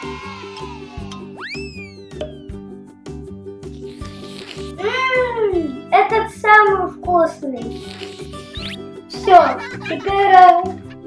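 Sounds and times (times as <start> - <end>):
child making vocal sounds: 4.8 - 6.4.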